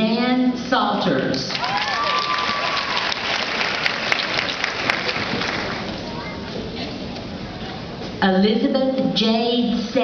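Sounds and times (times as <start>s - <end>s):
drawn-out cheer: 1.5s - 3.9s
audience applauding: 1.5s - 6.0s.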